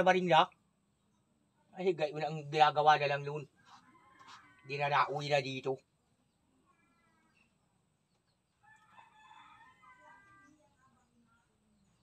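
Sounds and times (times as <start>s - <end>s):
rooster crowing faintly: 3.1s - 5.4s, 8.6s - 11.5s.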